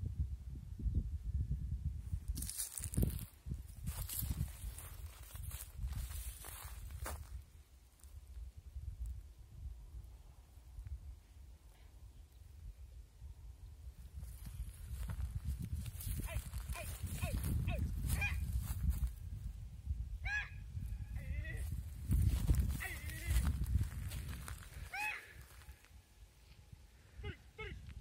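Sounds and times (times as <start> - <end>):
wind rumbling on microphone: 0.0 - 28.0
sheep and goats calling: 24.8 - 25.6.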